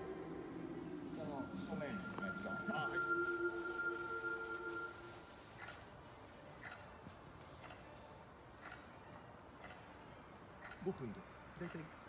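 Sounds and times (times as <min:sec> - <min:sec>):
sustained chord of held tones: 0:00.0 - 0:05.4
clock ticking: 0:08.6 - 0:08.9, 0:09.6 - 0:09.8.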